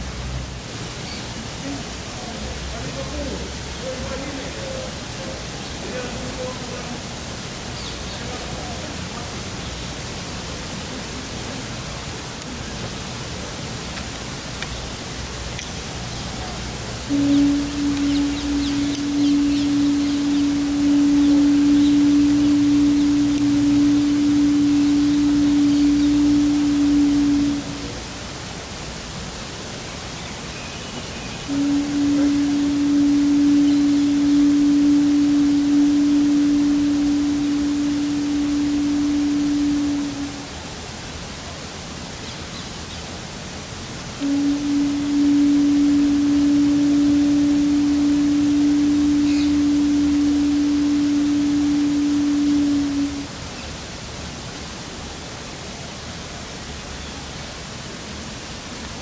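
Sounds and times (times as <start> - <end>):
outdoor background hiss: 0.0 - 59.0
conch shell trumpet blasts: 17.0 - 28.2, 31.5 - 40.6, 44.2 - 53.4.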